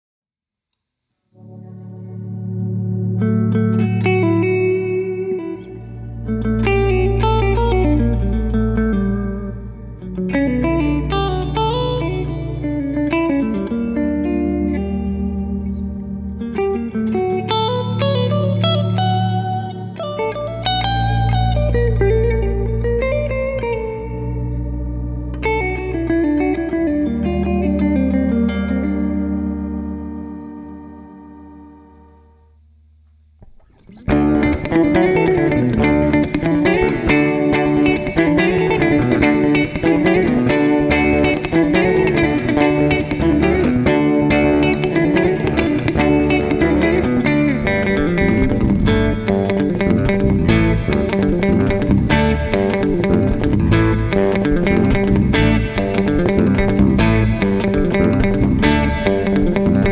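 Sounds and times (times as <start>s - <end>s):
electric bass held notes: 1.3s - 59.9s
electric guitar with bent notes: 1.3s - 59.9s.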